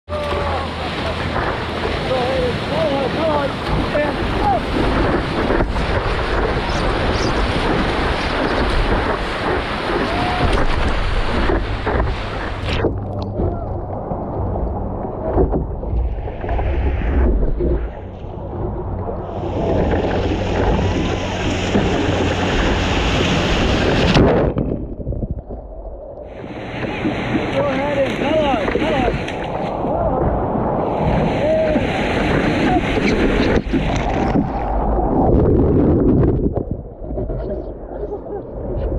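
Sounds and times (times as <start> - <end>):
rushing whitewater: 0.1 - 15.3, 26.3 - 35.1
ocean water sloshing: 0.1 - 38.9
wind on microphone: 0.1 - 38.9.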